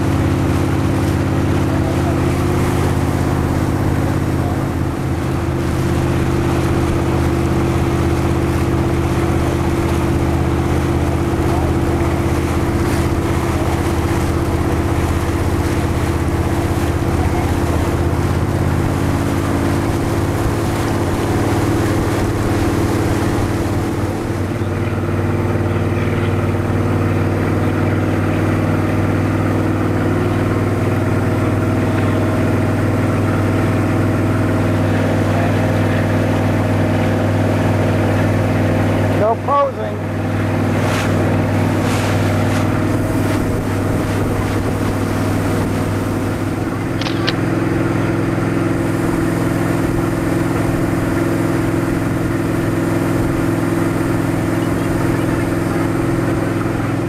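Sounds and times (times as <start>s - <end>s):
motorboat engine running: 0.0s - 57.0s
rush of boat wake: 0.0s - 57.0s.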